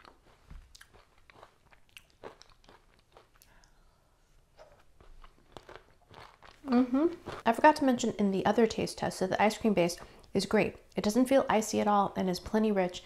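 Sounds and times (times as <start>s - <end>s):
person chewing crunchy food: 0.0s - 3.8s, 4.6s - 7.4s.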